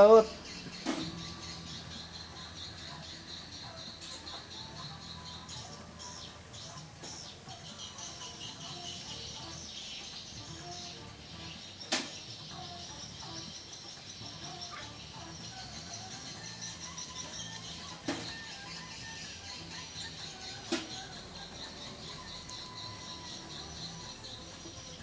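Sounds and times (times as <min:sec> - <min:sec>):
background music with low notes: 0:00.0 - 0:25.0.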